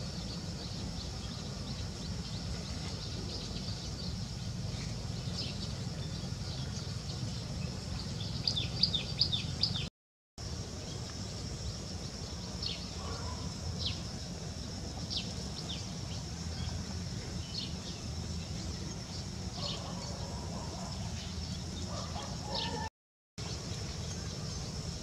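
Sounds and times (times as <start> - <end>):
small birds chirping: 0.0 - 9.9, 10.6 - 25.0
steady high hum: 0.0 - 25.0.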